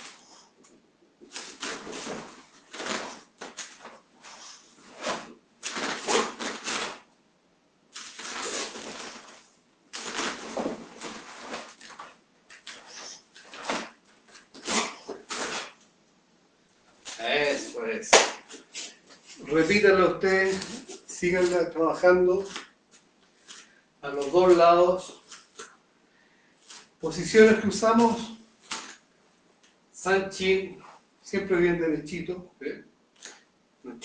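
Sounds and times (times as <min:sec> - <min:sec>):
clothing rustles: 0:00.0 - 0:07.1, 0:07.9 - 0:16.0, 0:16.7 - 0:25.8.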